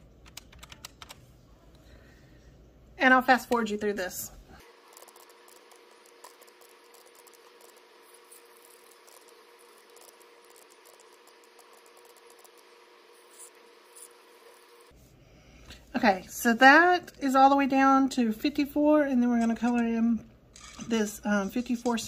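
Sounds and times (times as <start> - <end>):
faint hum: 0.0 - 22.0
calculator keys clicking: 0.2 - 1.2.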